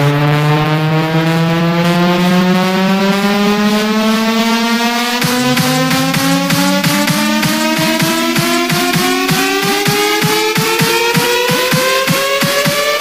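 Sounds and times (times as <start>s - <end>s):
buzzy synth tone rising: 0.0s - 13.0s
kick drum beat: 5.2s - 13.0s.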